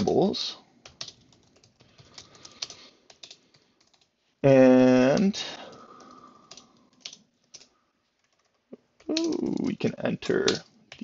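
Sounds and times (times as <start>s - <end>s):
faint keyboard keystrokes: 0.8s - 4.1s, 5.1s - 9.6s.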